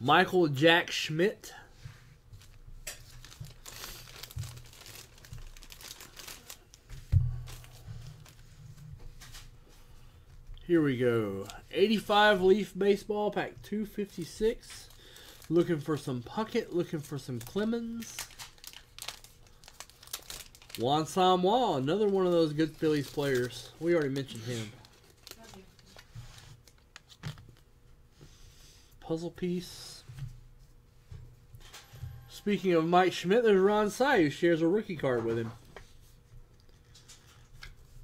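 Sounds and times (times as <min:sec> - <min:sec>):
plastic bag crinkling: 0:02.4 - 0:08.5, 0:14.7 - 0:27.6.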